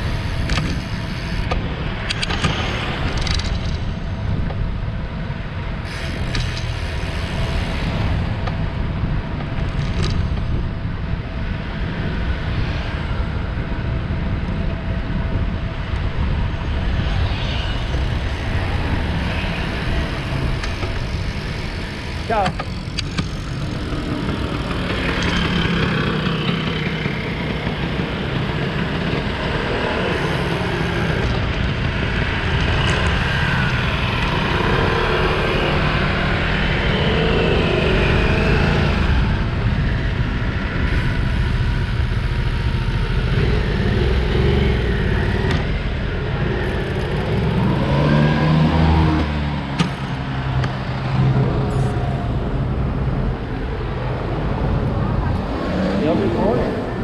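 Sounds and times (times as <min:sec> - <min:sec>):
steady low rumble: 0:00.0 - 0:57.0
traffic passing: 0:00.0 - 0:57.0
vehicle engine passing by: 0:43.2 - 0:57.0.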